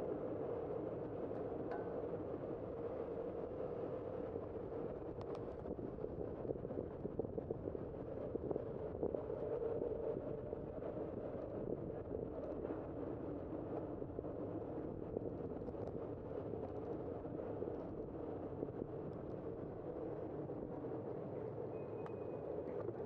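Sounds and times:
wind and road noise: 0.0s - 23.0s.

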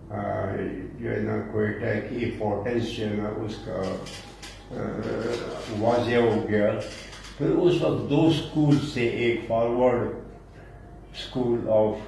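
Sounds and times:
man's hesitant drawn-out voice: 0.0s - 6.8s.

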